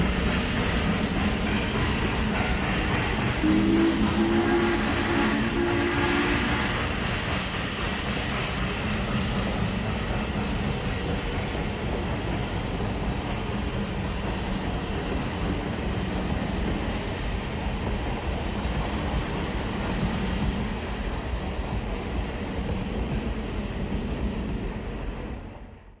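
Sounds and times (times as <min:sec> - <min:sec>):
train rumbling on track: 0:00.0 - 0:26.0.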